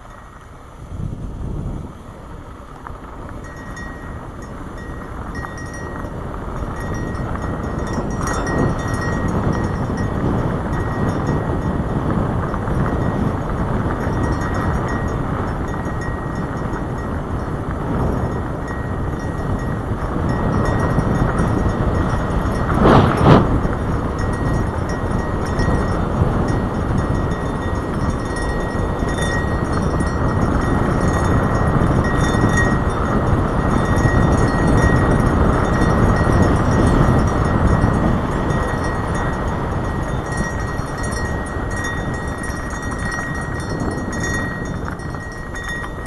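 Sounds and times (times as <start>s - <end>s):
bicycle tyres crunching on dirt: 0.0s - 46.0s
wind rushing over microphone: 0.0s - 46.0s.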